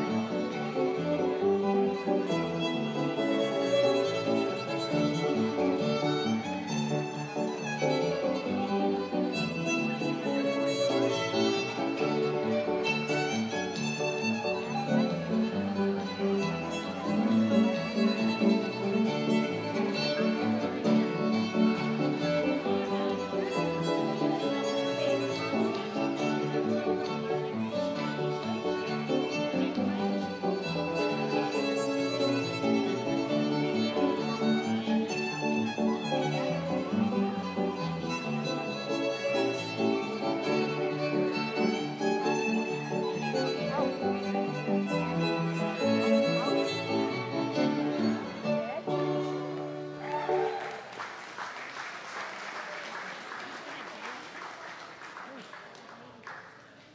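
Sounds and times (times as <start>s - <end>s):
lead melody instrument: 0.0s - 50.0s
piano accompaniment: 0.0s - 50.5s.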